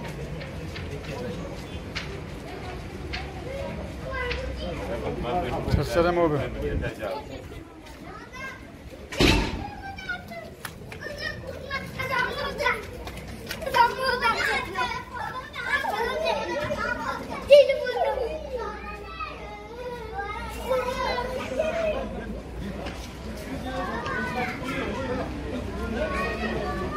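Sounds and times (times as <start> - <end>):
people talking: 0.0 - 26.9
children's voices: 1.1 - 5.8, 6.9 - 26.9
sharp thump: 9.1 - 9.8.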